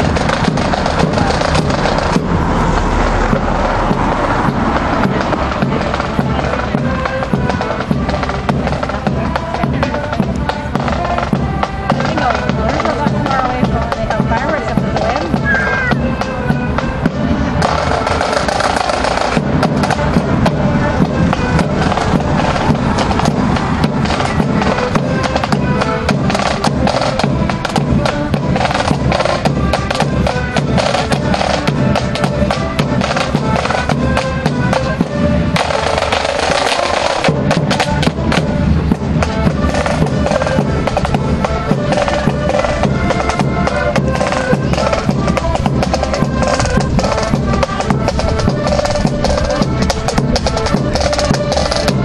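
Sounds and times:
people's voices: 0.0 - 29.9
accordion band playing: 0.0 - 52.0
sharp drum beats: 0.0 - 52.0.

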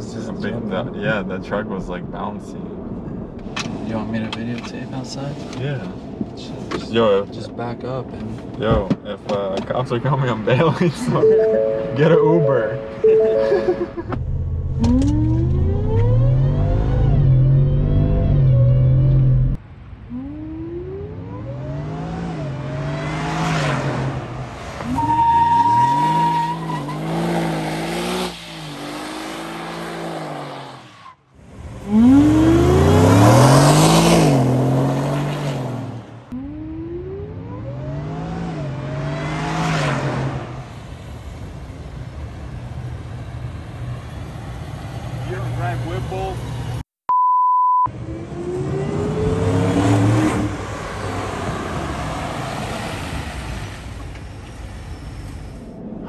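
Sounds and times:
steady beep: 11.2 - 14.1, 47.1 - 47.9
tires squealing on asphalt: 21.4 - 35.8
engine revving hard: 31.8 - 36.0, 37.4 - 40.6, 48.0 - 52.7.

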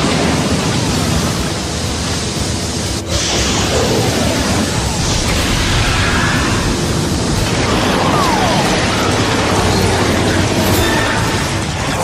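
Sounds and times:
cartoon fire jet rushing: 3.0 - 12.0.

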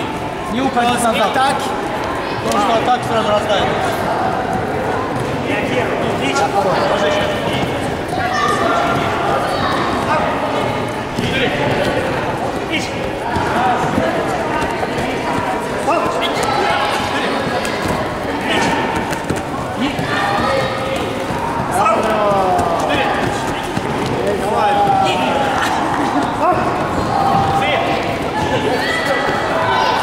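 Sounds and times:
people talking: 0.0 - 30.0.

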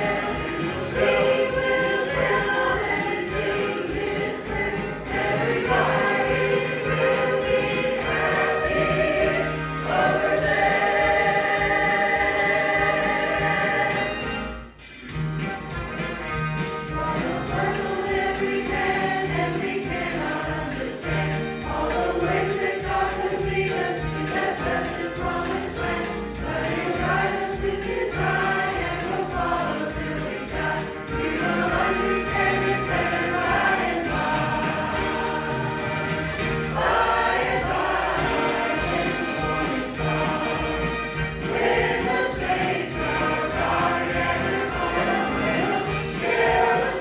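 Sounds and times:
mixed choir singing a hymn: 0.0 - 14.6, 16.8 - 47.0.

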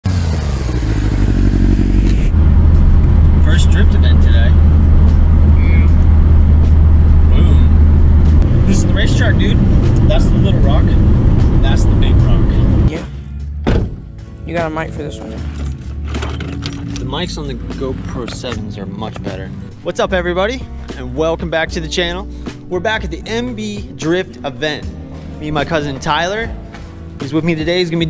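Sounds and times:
car engine and road drone: 0.0 - 19.9, 23.3 - 27.2.

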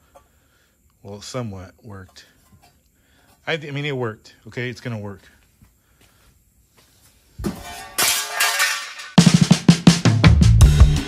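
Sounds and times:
drum-kit beat with heavy bass: 9.2 - 11.0.

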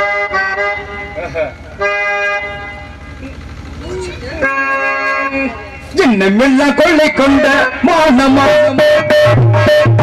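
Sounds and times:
harmonium chord: 0.0 - 10.0.

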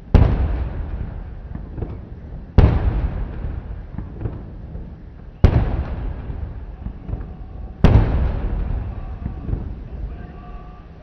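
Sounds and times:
rolling echo: 0.0 - 11.0.

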